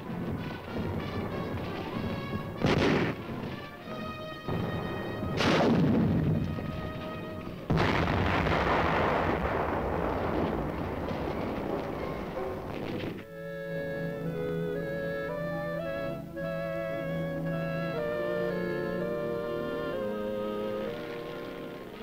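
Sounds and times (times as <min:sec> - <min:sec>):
dramatic orchestral music: 0:00.0 - 0:07.8, 0:11.5 - 0:22.0
heavy explosions: 0:00.0 - 0:13.3.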